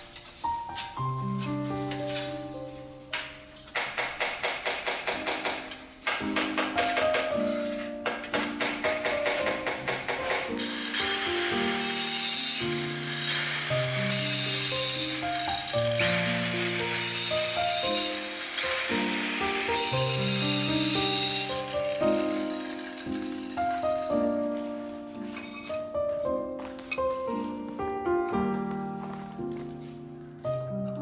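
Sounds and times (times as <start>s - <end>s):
background music with held notes: 0.0s - 31.0s
electric tile cutter whining: 8.6s - 25.9s.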